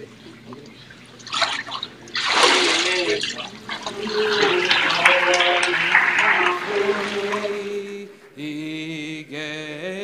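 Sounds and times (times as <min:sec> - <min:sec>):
voices: 0:00.0 - 0:08.6
water sloshing and splashing: 0:00.4 - 0:07.7.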